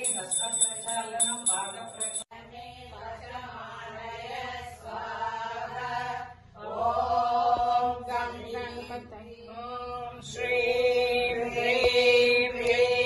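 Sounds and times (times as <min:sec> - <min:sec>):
bell ringing: 0:00.0 - 0:02.3
voices chanting a devotional recitation: 0:00.0 - 0:13.0.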